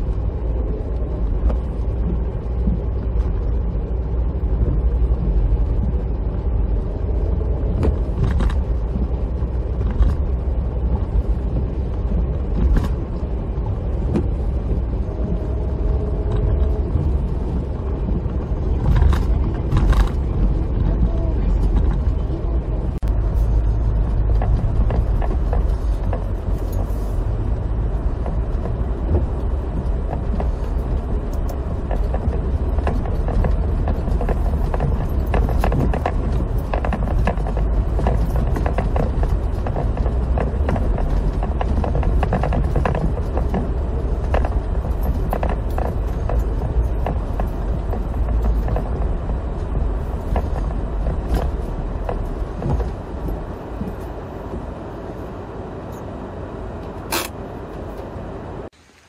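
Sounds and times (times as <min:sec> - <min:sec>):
tyre and drivetrain rumble: 0:00.0 - 0:58.8
tyres clicking and knocking: 0:07.5 - 0:54.8.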